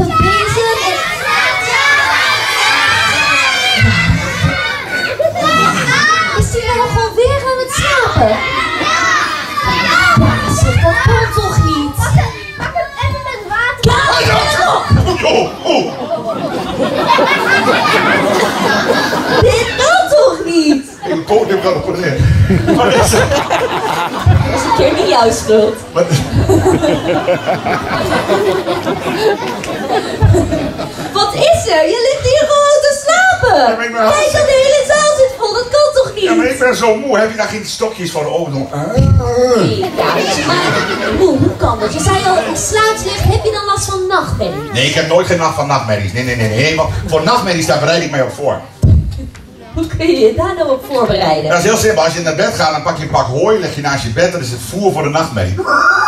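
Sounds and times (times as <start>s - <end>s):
young children shouting: 0.0s - 16.1s
voices chattering in a hall: 0.0s - 56.0s.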